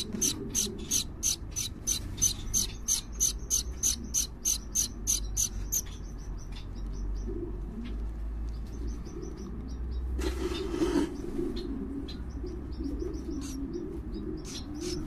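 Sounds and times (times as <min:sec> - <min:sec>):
finch nestlings begging calls: 0:00.0 - 0:06.2, 0:12.3 - 0:15.0.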